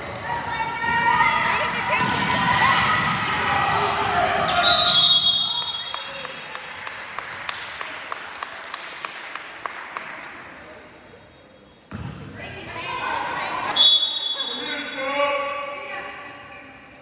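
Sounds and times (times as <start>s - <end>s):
referee's whistle: 4.5s - 6.1s, 13.8s - 15.0s.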